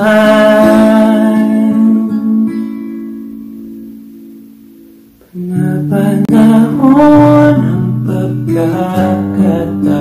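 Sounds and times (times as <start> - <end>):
acoustic guitar chord ringing: 0.0 - 10.0.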